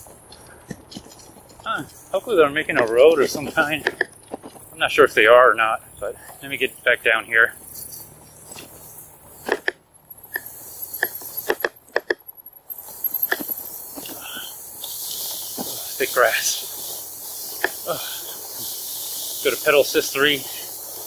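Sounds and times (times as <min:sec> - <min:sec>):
grass swishing against bike: 0:00.0 - 0:09.7, 0:10.3 - 0:21.0
bike clicks and rattles: 0:00.0 - 0:21.0.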